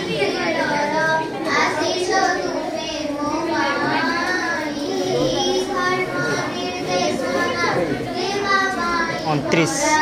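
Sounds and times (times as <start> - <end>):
murmur of schoolchildren: 0.0 - 10.0.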